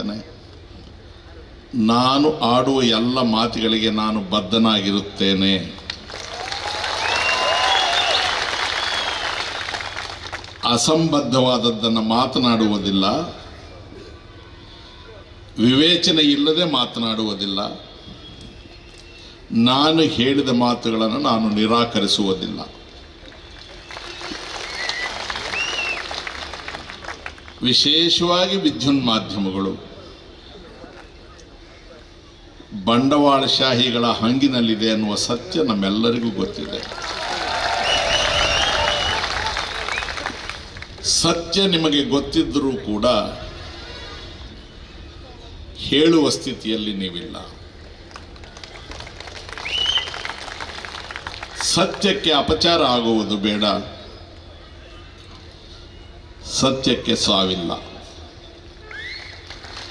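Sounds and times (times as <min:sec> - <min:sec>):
crowd applauding: 0:05.8 - 0:10.8, 0:23.2 - 0:27.7, 0:36.5 - 0:41.1, 0:48.0 - 0:52.2, 0:58.9 - 0:59.9
short whistles: 0:07.0 - 0:09.7, 0:23.4 - 0:26.1, 0:37.8 - 0:39.3, 0:49.6 - 0:50.4, 0:58.8 - 0:59.5.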